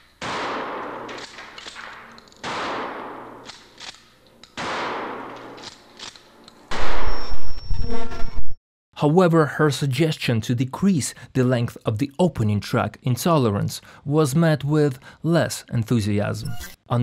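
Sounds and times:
shotgun blasts: 0.2s - 3.8s, 4.6s - 5.6s, 6.7s - 7.3s.

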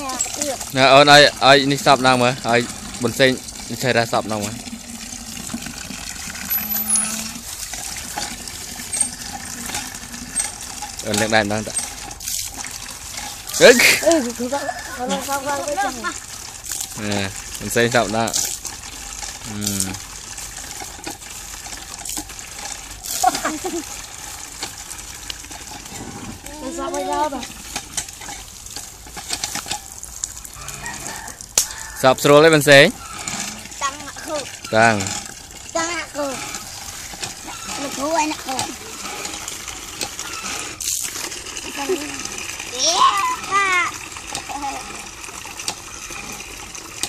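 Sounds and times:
water pouring into a bucket: 0.0s - 47.0s
pump handle clicking: 7.7s - 13.4s, 36.4s - 41.3s.

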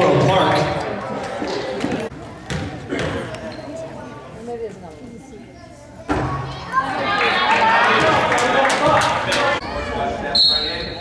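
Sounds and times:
voices in a gym: 0.0s - 11.0s.

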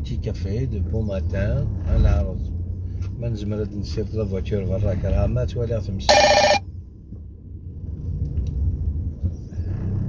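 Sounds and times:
electronic alert tone: 6.1s - 6.6s.

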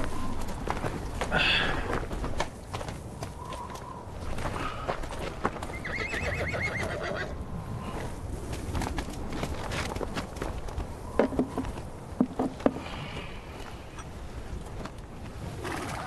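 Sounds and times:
horse whinnying: 5.8s - 7.3s.

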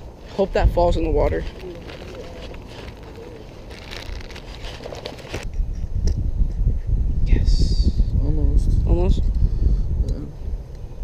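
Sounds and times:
wind rumble on microphone: 0.0s - 11.0s
rustling and clicking handling: 1.4s - 5.4s.

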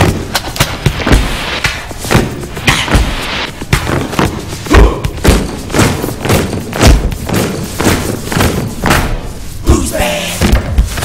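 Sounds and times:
heavy stomping thuds: 0.0s - 9.6s
music: 0.0s - 11.0s.

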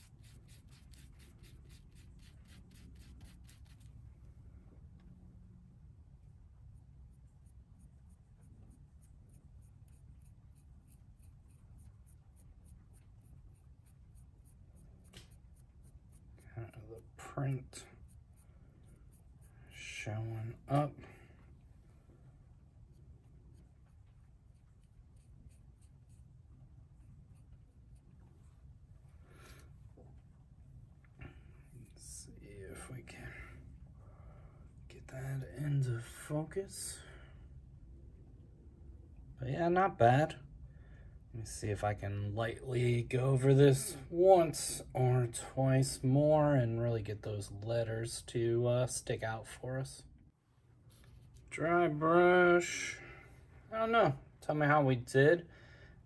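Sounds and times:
paintbrush bristles scratching: 0.0s - 4.0s, 7.1s - 19.8s, 22.8s - 28.2s
low steady hum: 0.0s - 56.0s.

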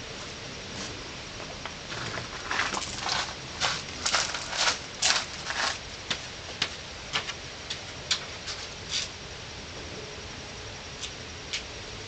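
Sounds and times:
footsteps on porch floor: 0.1s - 9.1s.

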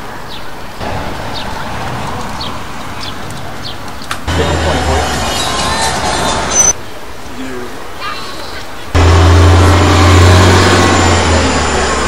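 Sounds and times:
city street noise: 0.0s - 12.0s.

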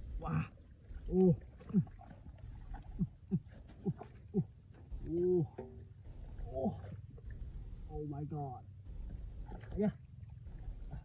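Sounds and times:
steady low rumble: 2.6s - 11.0s.

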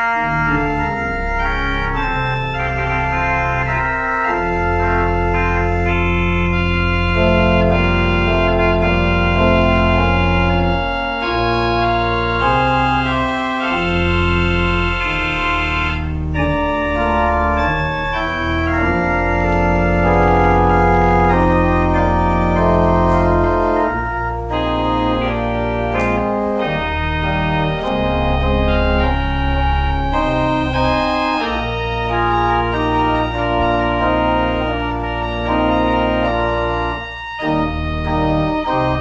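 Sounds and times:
organ playing chords: 0.0s - 39.0s.

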